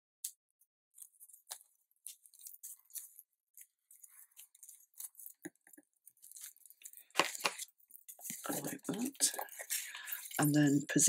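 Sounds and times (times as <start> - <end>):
paper and tape rustling: 1.0 - 11.0.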